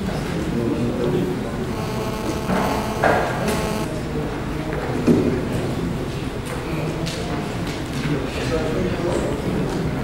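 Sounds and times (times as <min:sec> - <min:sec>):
large hall background noise: 0:00.0 - 0:10.0.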